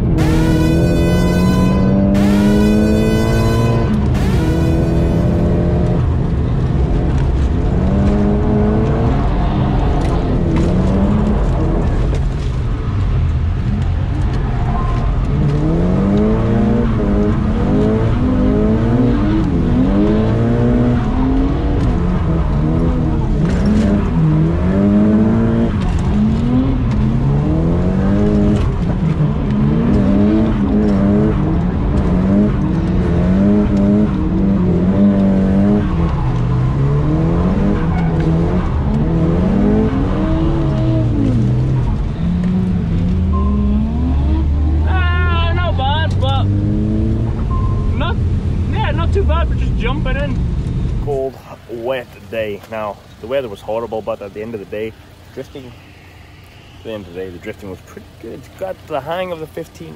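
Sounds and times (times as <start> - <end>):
car engine revving: 0.0 - 59.9.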